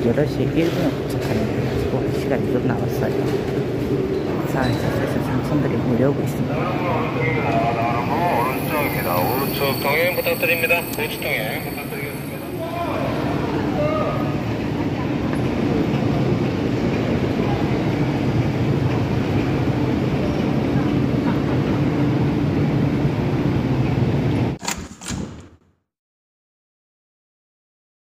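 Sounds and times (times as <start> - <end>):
crowd moving and talking: 0.0 - 24.4
machinery hum: 0.0 - 25.2.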